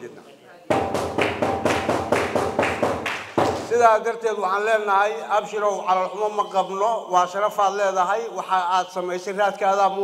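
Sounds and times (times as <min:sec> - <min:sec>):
rapid sharp taps: 0:00.7 - 0:03.8.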